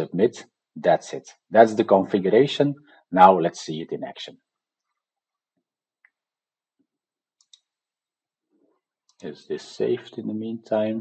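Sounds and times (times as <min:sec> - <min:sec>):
faint mouse clicks: 0:07.4 - 0:07.8.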